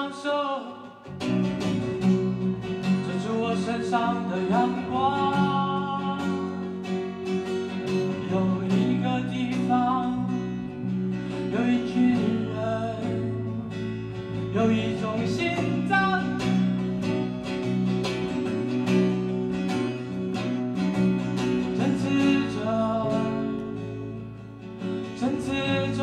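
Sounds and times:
man singing: 0.0 - 1.5, 2.8 - 17.0, 21.6 - 24.2, 24.8 - 26.0
acoustic guitar strumming: 0.0 - 26.0
electric bass: 1.2 - 26.0.

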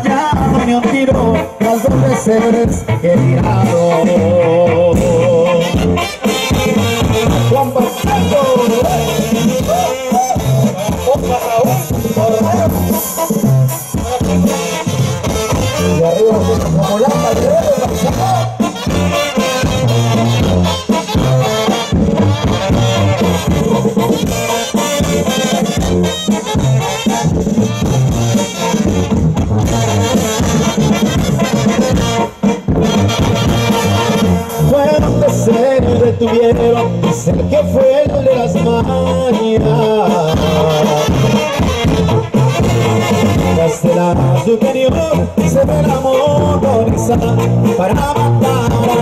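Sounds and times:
brass band playing dance tune: 0.0 - 49.0
pulsing tuba bass line: 0.0 - 49.0.

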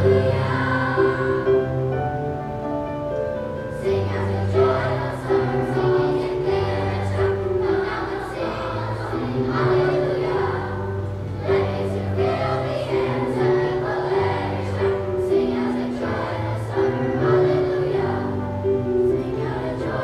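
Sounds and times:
children's choir singing: 0.0 - 2.7, 3.4 - 20.0.

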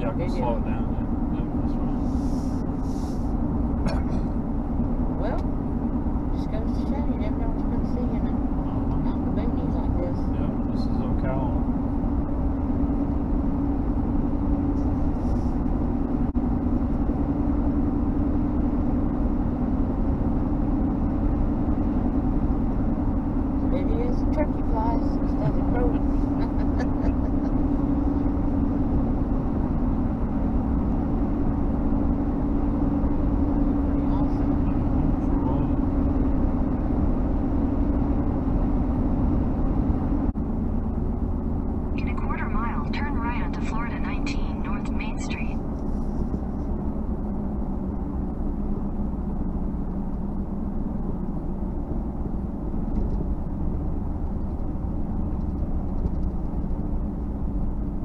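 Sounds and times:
car cabin road drone: 0.0 - 58.0.

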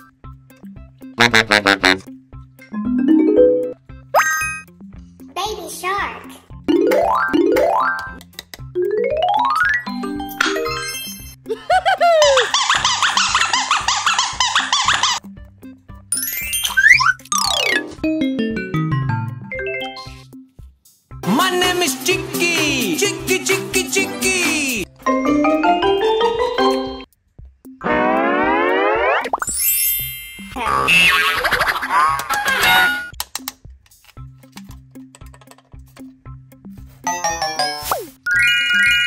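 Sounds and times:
cheerful background music: 0.0 - 12.0, 15.0 - 39.0
quick upward blips: 27.8 - 29.6
tone gliding upward: 27.8 - 29.6.

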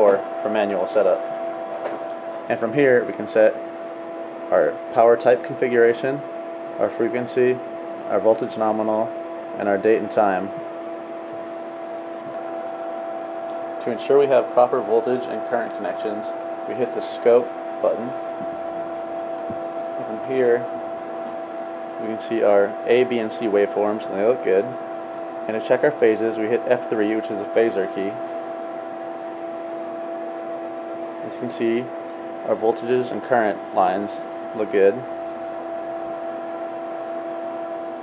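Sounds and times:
steady two-tone hum: 0.0 - 38.0.

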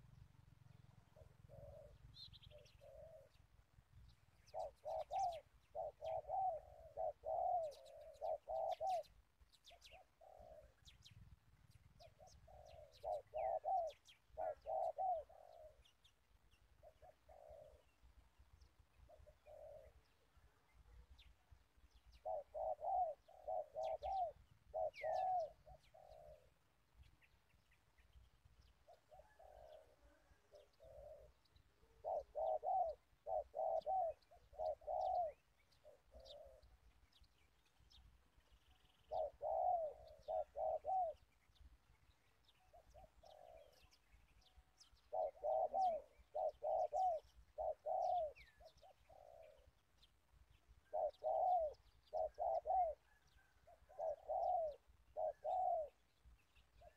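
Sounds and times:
dove cooing: 0.0 - 56.9
small birds chirping: 0.0 - 56.9.

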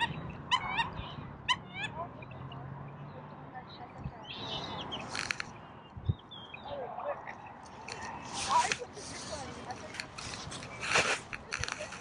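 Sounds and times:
birds chirping: 0.0 - 12.0
sharp clicks: 5.0 - 5.6.

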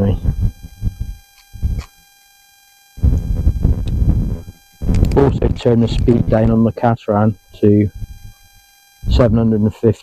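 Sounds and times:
wind buffeting microphone: 0.0 - 1.9, 3.0 - 6.6, 7.9 - 8.4
faint thin microphone tones: 0.0 - 2.0, 3.0 - 9.4.

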